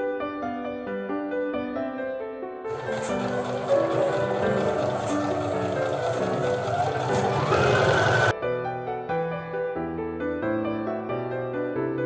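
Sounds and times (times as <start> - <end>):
soft piano music: 0.0 - 12.0
sewing machine stitching: 2.7 - 8.3.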